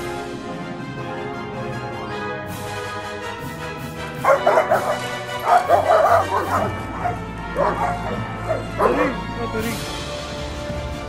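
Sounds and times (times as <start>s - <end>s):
dogs barking and snarling: 3.9s - 9.7s.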